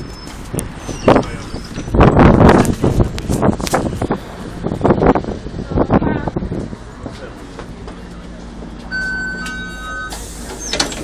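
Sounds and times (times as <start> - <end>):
bus diesel engine humming: 0.0 - 11.0.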